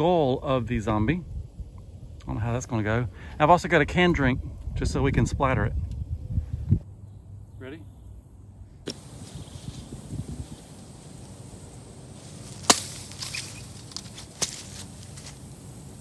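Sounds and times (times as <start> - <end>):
blade slicing through pineapple: 12.6 - 14.7
machete chopping: 12.6 - 14.8.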